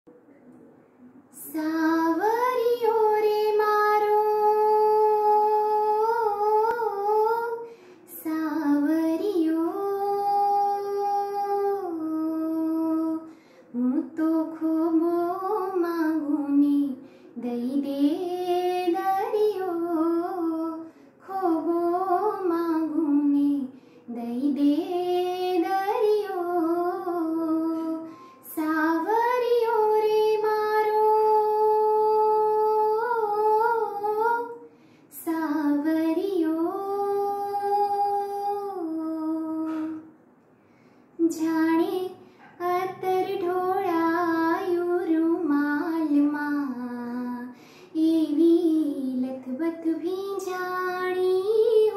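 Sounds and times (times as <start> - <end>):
woman singing unaccompanied: 1.3 - 40.1, 41.2 - 51.9.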